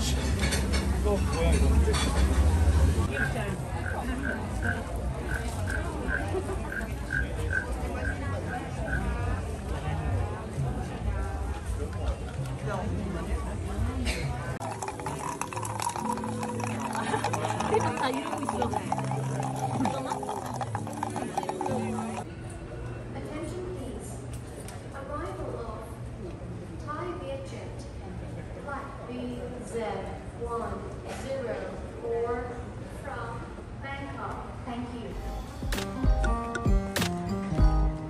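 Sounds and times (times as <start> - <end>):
wooden frog rasp croaks: 3.1 - 9.2.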